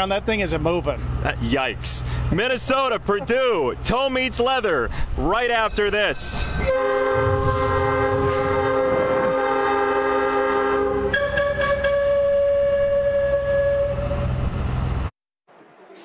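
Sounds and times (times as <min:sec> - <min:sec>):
engine rumble: 0:00.0 - 0:05.2, 0:10.9 - 0:15.1
locomotive horn blowing: 0:06.6 - 0:14.5.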